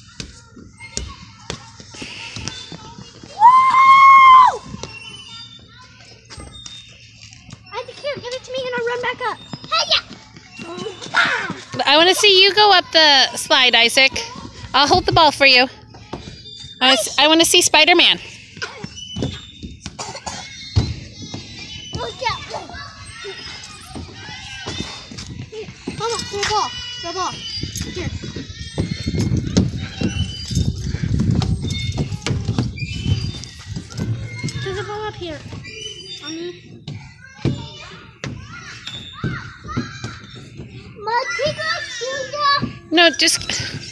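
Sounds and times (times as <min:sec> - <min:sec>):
faint children's voices: 0:00.0 - 0:43.9.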